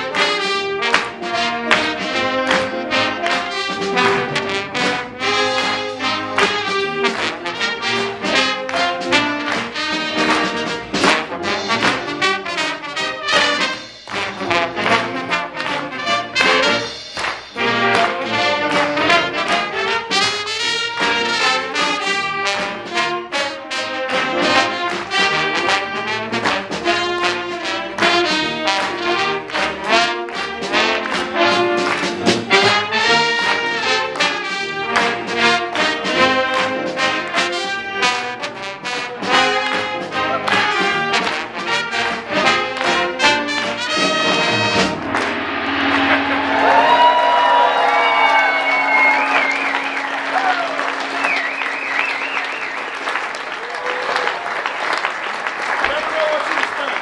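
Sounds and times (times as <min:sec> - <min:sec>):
jazz big band playing: 0:00.0 - 0:55.8.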